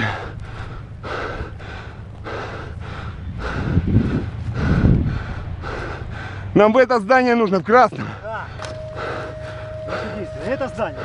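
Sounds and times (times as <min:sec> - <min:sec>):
man breathing heavily: 0:00.0 - 0:06.6, 0:08.0 - 0:11.0
low rumbles: 0:00.0 - 0:11.0.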